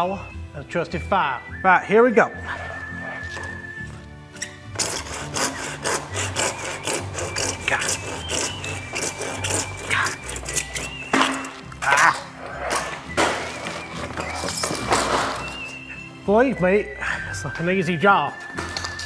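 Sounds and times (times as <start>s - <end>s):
background music: 0.0s - 19.0s
handsaw cutting plastic pipe: 4.4s - 16.1s.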